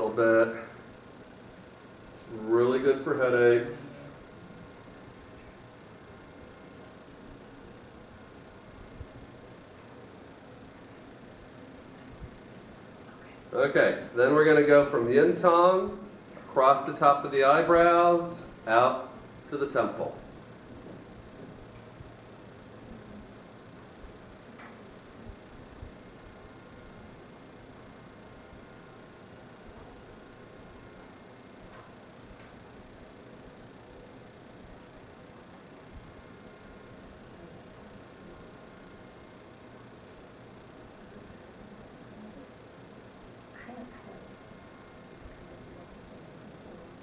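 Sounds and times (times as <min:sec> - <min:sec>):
electrical hum: 0:00.0 - 0:47.0.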